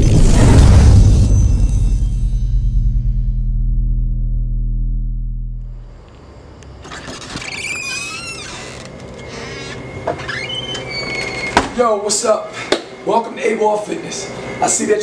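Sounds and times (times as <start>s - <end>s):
low intro music: 0.0s - 6.6s
door squeaking open: 6.8s - 11.8s.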